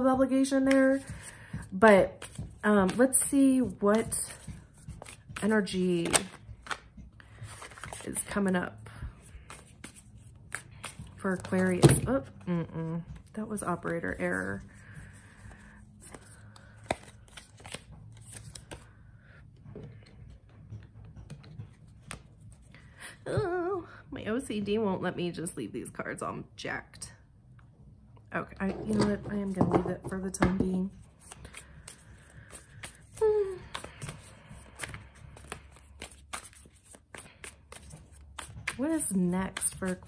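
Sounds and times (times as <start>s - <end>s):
cards being shuffled: 0.5s - 19.0s, 20.0s - 22.8s, 31.0s - 40.0s.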